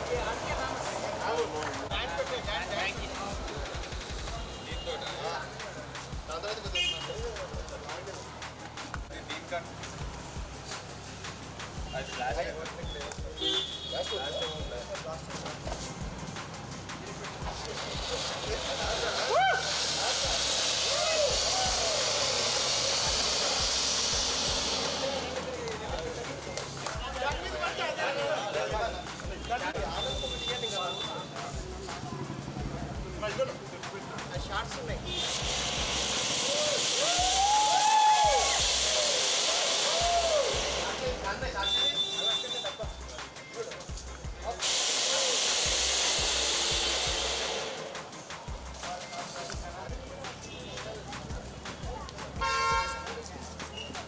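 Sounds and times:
firework fountain hissing: 0:00.0 - 0:54.0.

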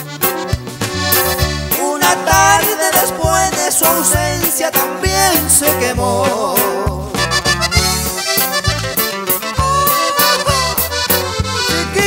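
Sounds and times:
accordion melody: 0:00.0 - 0:12.0
bass line: 0:00.0 - 0:12.0
steady beat: 0:00.0 - 0:12.0.

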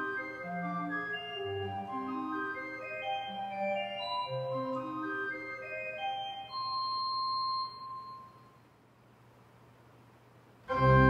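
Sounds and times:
pipe organ playing single notes: 0:10.7 - 0:11.0.

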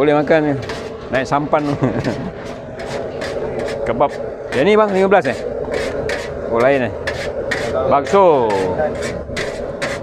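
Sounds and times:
machine hum: 0:00.0 - 0:10.0.

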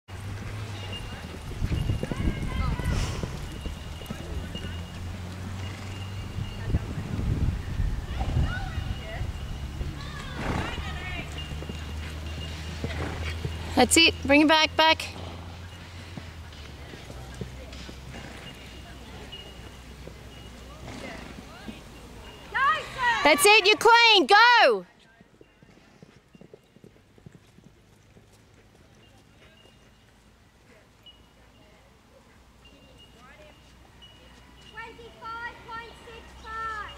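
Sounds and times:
horse galloping on dirt: 0:00.1 - 0:31.0.

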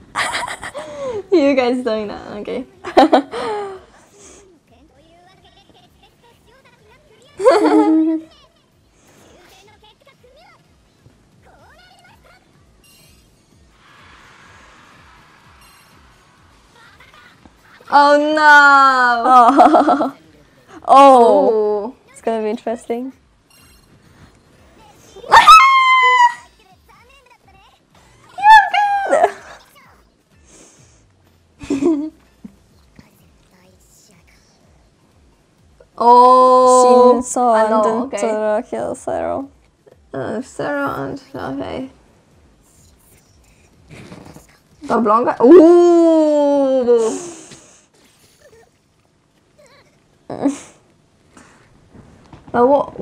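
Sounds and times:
faint cartoon dialogue: 0:24.6 - 0:30.8
faint whispered speech: 0:32.8 - 0:34.8, 0:42.6 - 0:44.9.

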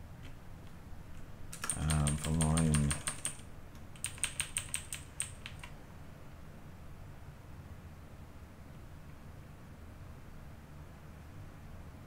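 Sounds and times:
typing on computer keyboard: 0:01.5 - 0:05.8.

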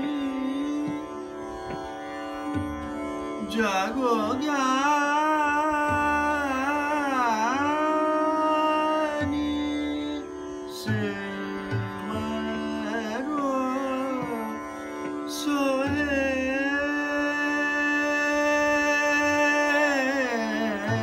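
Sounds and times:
man singing classical vocals: 0:00.0 - 0:01.8, 0:03.4 - 0:21.0
tanpura drone: 0:00.0 - 0:21.0.

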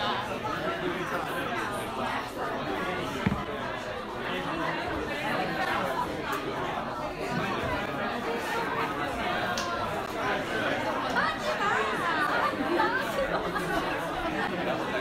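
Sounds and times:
people talking and laughing: 0:00.0 - 0:15.0
thump: 0:03.2 - 0:03.6.

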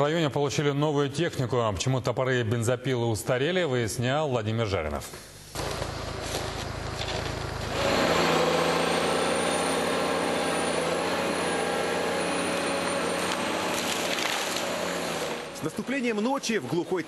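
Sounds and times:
diesel engine running: 0:05.6 - 0:16.8.

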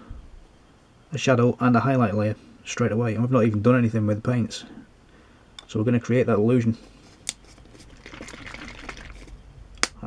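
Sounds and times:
faint handling noise: 0:06.6 - 0:08.3.

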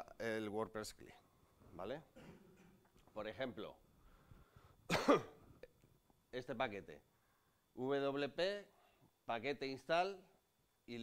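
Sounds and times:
person coughing: 0:02.2 - 0:02.8, 0:04.9 - 0:05.8.

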